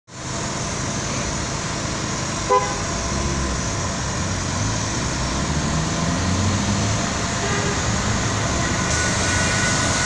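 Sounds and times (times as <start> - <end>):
street traffic rumble and hiss: 0.1 - 10.0
truck engine running: 0.1 - 10.0.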